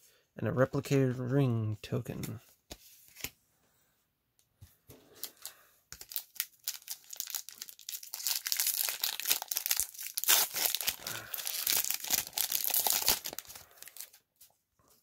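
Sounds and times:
wrapper tearing and crinkling: 5.3s - 14.2s.

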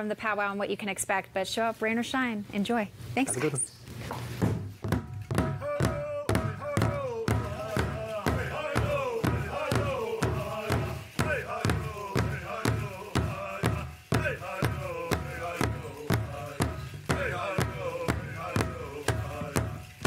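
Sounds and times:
large drum steady beat: 4.5s - 20.0s
group singing high phrases: 5.6s - 20.0s.

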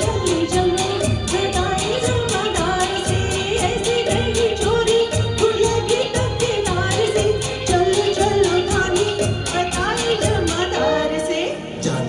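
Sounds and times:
person singing over backing track: 0.0s - 12.0s.

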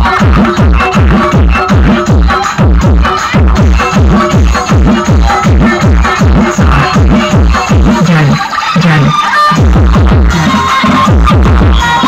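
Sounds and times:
electronic dance music: 0.0s - 12.0s
deep bass kicks: 9.6s - 10.5s.

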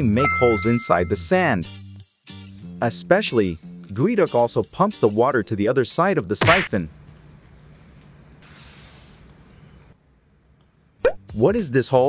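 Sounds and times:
hiss of water squirting: 8.4s - 9.3s.

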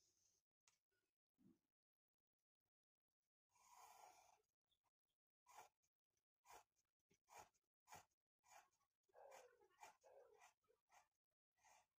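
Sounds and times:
pencil scratching on paper: 5.5s - 5.8s, 6.4s - 12.0s.

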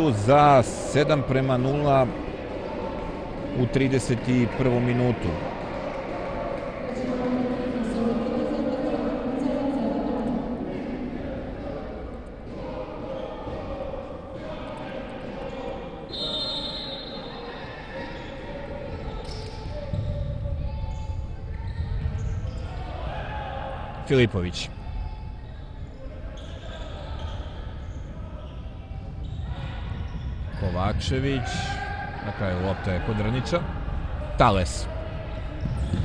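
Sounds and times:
players' voices echoing: 0.0s - 36.0s.

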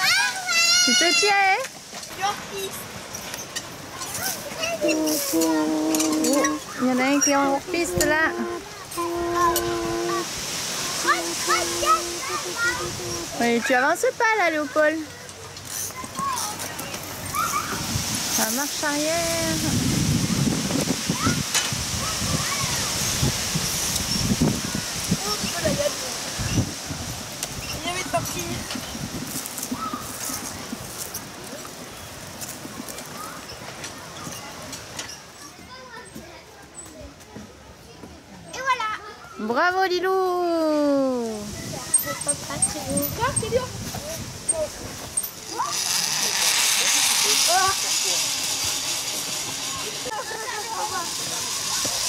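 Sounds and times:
children calling out: 0.0s - 1.6s, 3.9s - 13.4s, 15.0s - 18.2s, 21.0s - 23.2s, 45.4s - 52.0s
steady hiss: 0.1s - 35.1s, 41.2s - 52.0s
go-kart tyres crunching on dirt: 27.4s - 35.0s.

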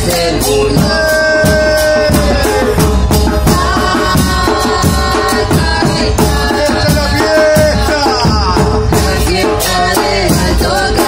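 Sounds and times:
cymbals crashing: 0.0s - 8.4s
bass drums beating: 0.0s - 11.0s.

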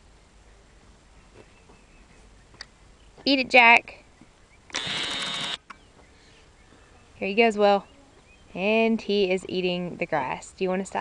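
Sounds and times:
camcorder zoom motor whirring: 4.7s - 5.7s.

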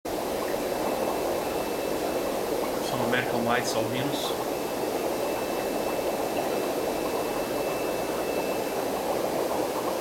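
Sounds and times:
aquarium filter bubbling: 0.1s - 10.0s.

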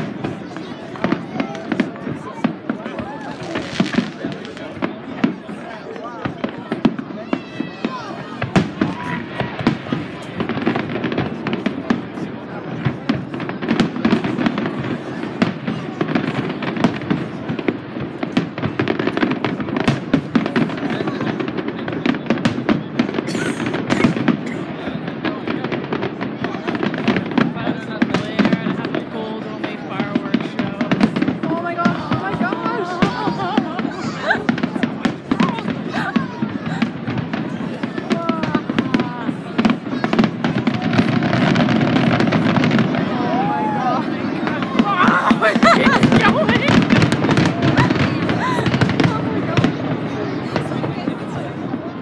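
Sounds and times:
fireworks bursting and crackling: 0.0s - 52.0s.

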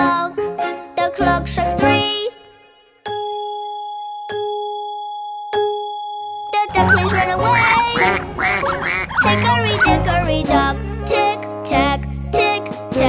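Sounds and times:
bouncy children's music: 0.0s - 3.5s, 6.5s - 13.0s
clock chime striking: 6.4s - 10.1s
cartoon ducks quacking: 6.7s - 11.2s.

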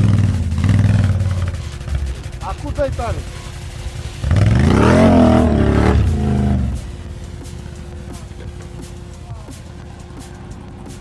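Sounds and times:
atv engine revving: 0.0s - 3.3s, 4.0s - 6.9s.

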